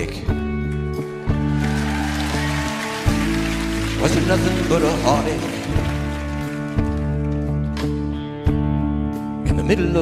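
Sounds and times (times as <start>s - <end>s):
live band guitar and bass chords: 0.0s - 10.0s.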